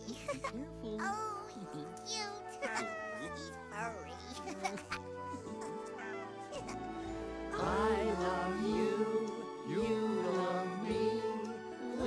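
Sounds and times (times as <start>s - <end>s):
soft background music: 0.0s - 12.0s
small creature squeaking: 5.8s - 6.8s.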